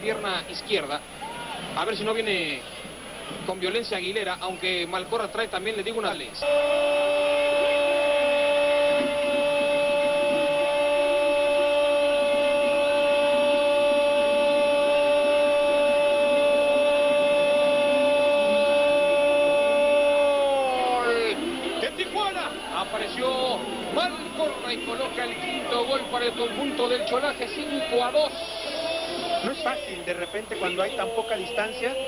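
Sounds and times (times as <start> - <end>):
stadium crowd noise: 0.0 - 32.0
excited commentary: 3.5 - 32.0
commentator shouting goal call: 6.4 - 32.0.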